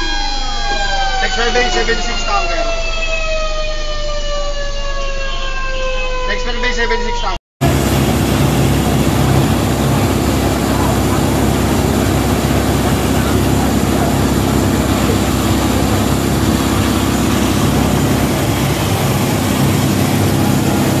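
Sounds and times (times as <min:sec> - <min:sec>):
fire truck engine running pump: 0:00.0 - 0:05.8, 0:07.6 - 0:21.0
loud rushing hiss of hose: 0:07.6 - 0:21.0.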